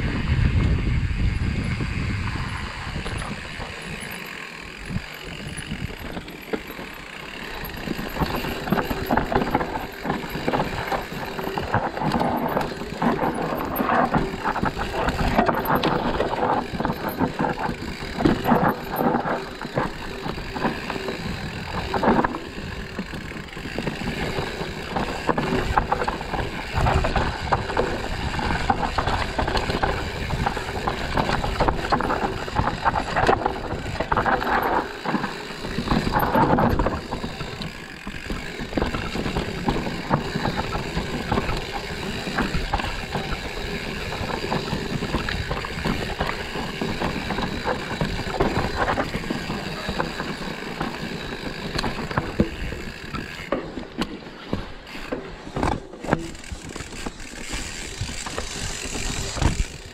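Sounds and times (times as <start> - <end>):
bike knocking and rattling: 0.0 - 59.9
bike tyres on dirt: 0.0 - 59.9.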